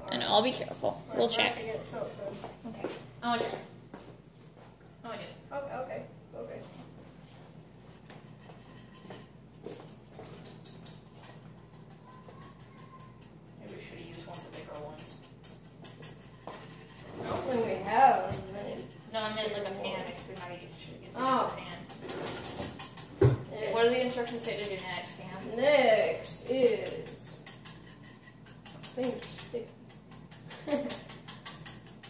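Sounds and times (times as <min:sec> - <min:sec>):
steady low hum: 0:00.0 - 0:32.0
utensils and cookware clicking: 0:08.7 - 0:17.1, 0:18.6 - 0:32.0.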